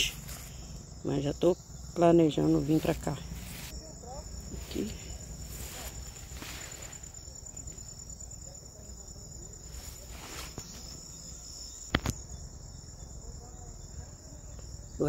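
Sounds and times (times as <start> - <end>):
insects trilling: 0.0 - 15.0.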